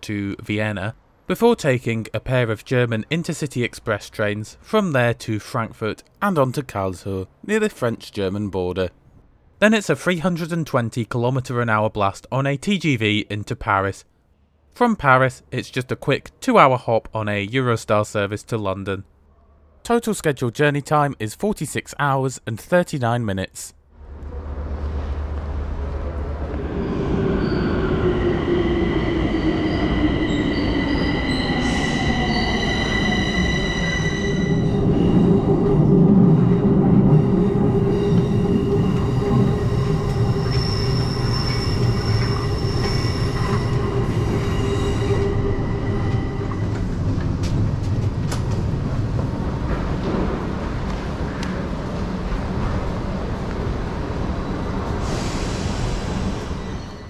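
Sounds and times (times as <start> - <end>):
low falling tone: 24.0 - 49.4
train wheels rumbling on rails: 24.0 - 57.0.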